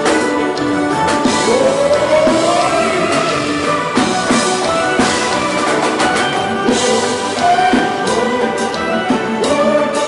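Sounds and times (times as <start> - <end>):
drum kit steady beat: 0.0 - 10.0
electric guitar: 0.0 - 10.0.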